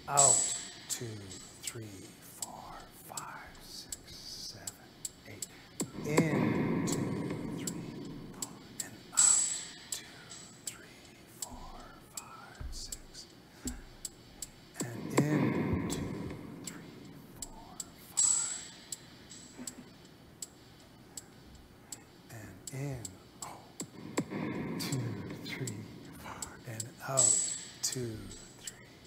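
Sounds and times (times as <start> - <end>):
soft ticks: 0.2 - 29.0.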